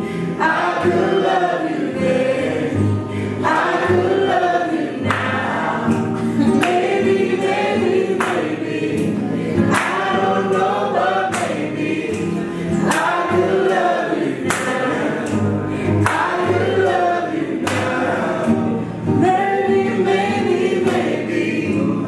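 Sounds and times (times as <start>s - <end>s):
woman singing: 0.0s - 13.8s, 19.0s - 22.0s
acoustic guitar strumming: 0.0s - 22.0s.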